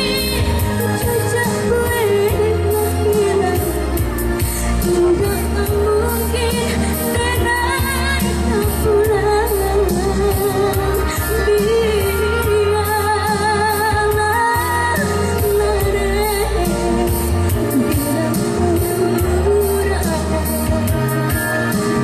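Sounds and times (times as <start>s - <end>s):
backing music with bass and beat: 0.0s - 22.0s
woman singing with vibrato: 0.0s - 22.0s.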